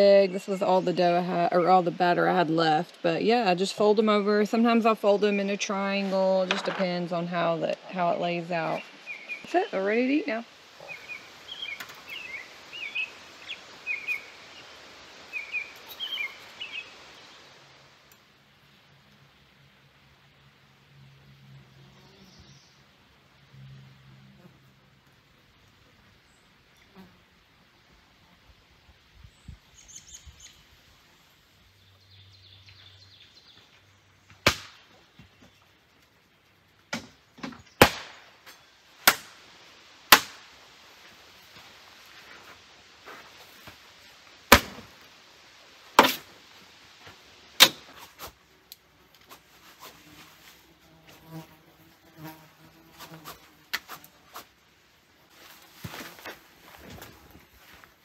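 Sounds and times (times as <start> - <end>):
fly swatter slaps: 34.4 - 34.9, 39.0 - 39.4
flies buzzing: 48.4 - 54.6.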